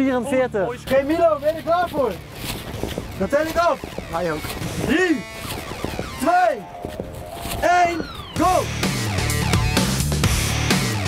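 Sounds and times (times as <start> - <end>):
man calling out countdown: 3.3 - 5.3, 6.0 - 6.8, 7.6 - 8.8.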